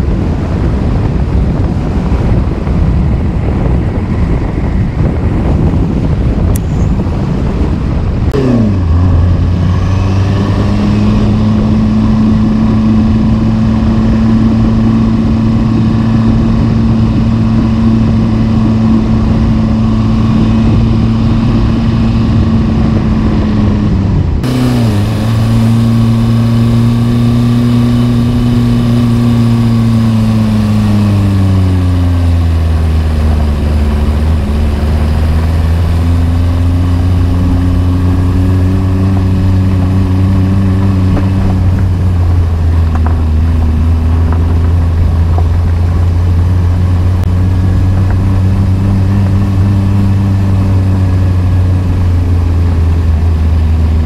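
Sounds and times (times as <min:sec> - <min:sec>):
car engine droning: 0:00.0 - 0:54.0
road and tyre noise: 0:00.0 - 0:54.0.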